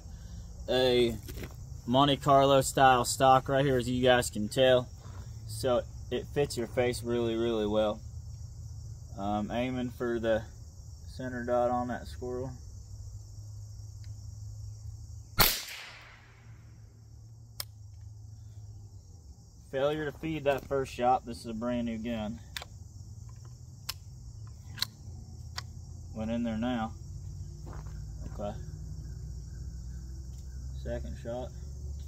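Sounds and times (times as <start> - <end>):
crickets chirping: 0.0 - 32.0
rifle shot with echo: 15.4 - 16.5.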